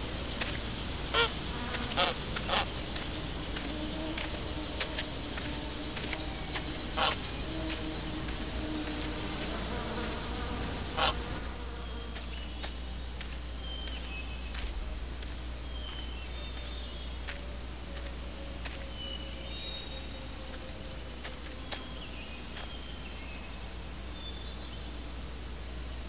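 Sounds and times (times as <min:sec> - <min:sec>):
constant high hiss: 0:00.0 - 0:26.0
insect buzzing: 0:00.0 - 0:26.0.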